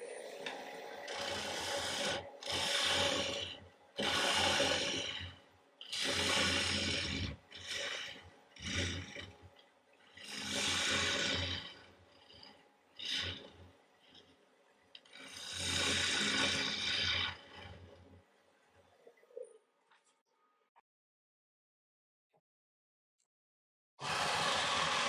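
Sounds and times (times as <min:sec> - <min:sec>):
gouge cutting wood on lathe: 0:00.0 - 0:14.4, 0:15.0 - 0:18.1, 0:24.0 - 0:25.0.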